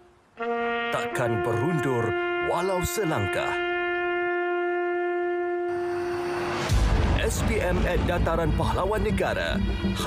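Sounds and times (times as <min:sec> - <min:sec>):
long held brass note: 0:00.0 - 0:07.0.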